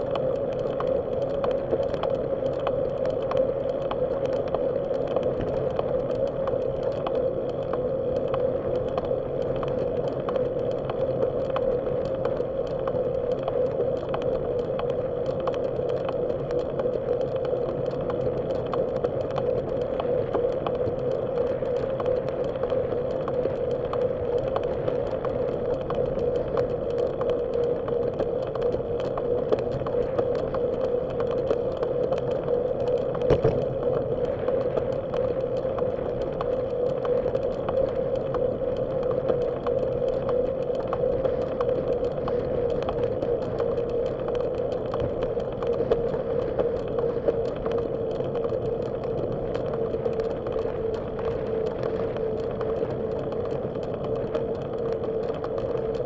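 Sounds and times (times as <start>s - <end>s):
bicycle rolling on pavement: 22.8s - 56.0s
loud knock: 33.3s - 33.7s.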